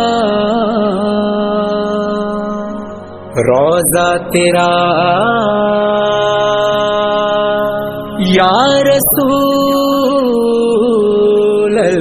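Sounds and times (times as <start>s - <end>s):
man singing a long note: 0.0s - 12.0s.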